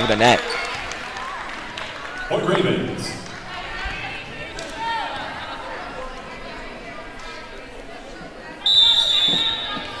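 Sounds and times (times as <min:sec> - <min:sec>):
referee's whistle blast: 0:08.6 - 0:09.8.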